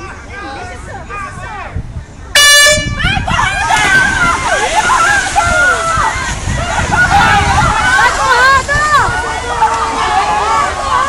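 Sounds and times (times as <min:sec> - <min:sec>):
crowd shouting and cheering: 0:00.0 - 0:11.0
air horn blast: 0:02.4 - 0:03.0
water splashing: 0:02.8 - 0:11.0.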